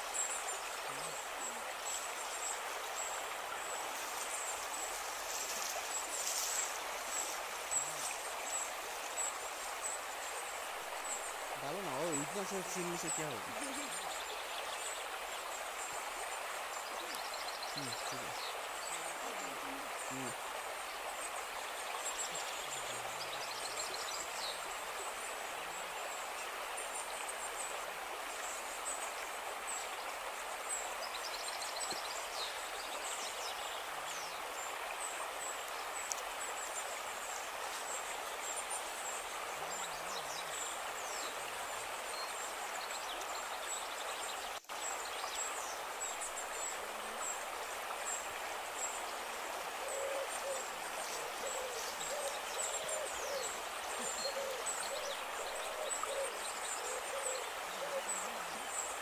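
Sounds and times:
forest stream running: 0.0s - 59.0s
bird hooting call: 49.8s - 58.2s.

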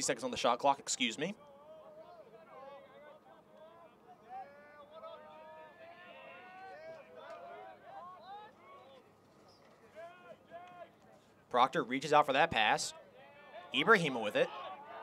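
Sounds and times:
distant players shouting: 1.3s - 15.0s.

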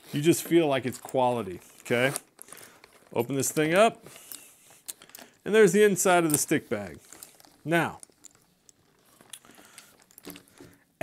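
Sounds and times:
leather bag rustling and clicking: 0.0s - 5.4s, 6.1s - 10.9s.

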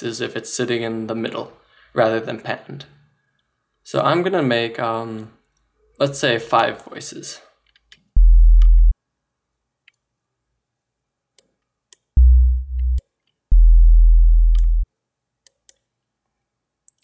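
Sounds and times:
deep synth sub bass notes: 8.2s - 9.0s, 12.2s - 14.8s.

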